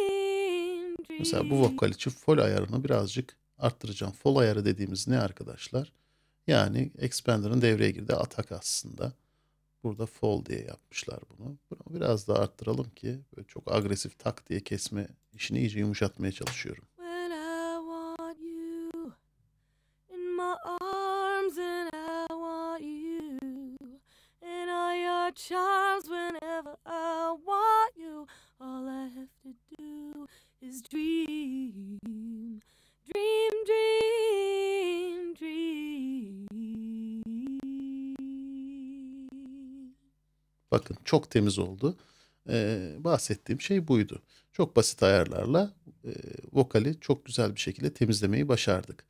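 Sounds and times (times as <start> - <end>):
solo singing voice: 0.0 - 2.6, 16.5 - 19.2, 20.1 - 40.0.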